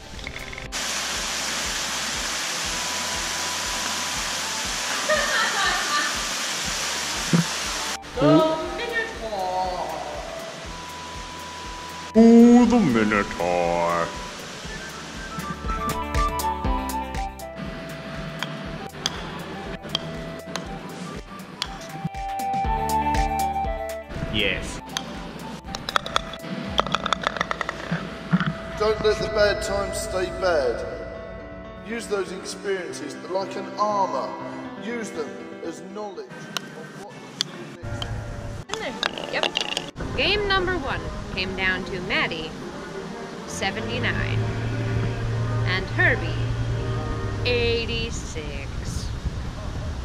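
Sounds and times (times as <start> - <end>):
water rushing: 0.0 - 16.0, 38.8 - 49.3
golf ball rattling in metal cup: 38.9 - 40.0.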